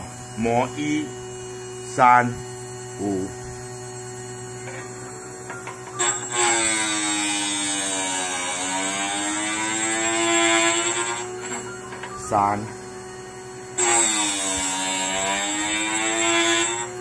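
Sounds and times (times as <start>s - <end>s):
grinding machine humming: 0.0s - 17.0s
grinding wheel whine: 0.0s - 17.0s.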